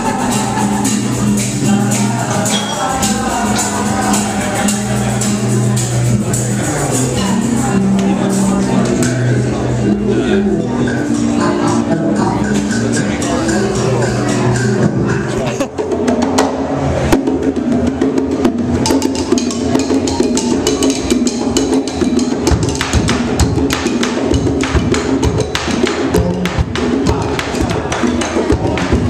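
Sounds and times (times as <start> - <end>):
hand drums: 0.0 - 29.0
wooden xylophone: 0.0 - 29.0.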